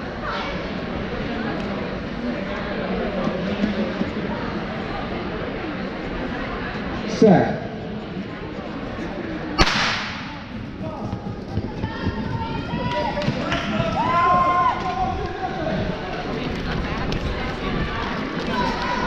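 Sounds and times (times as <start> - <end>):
starter's pistol crack: 9.6 - 10.3
spectators shouting and cheering: 10.9 - 19.0.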